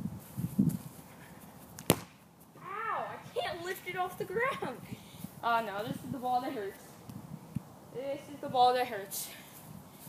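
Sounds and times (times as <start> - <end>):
foot kicking ball thud: 1.8 - 2.2.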